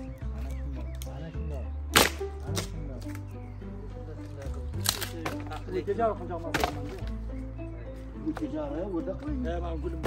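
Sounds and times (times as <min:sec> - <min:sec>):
background music: 0:00.0 - 0:10.0
wood cracking: 0:00.3 - 0:03.4, 0:04.2 - 0:07.3.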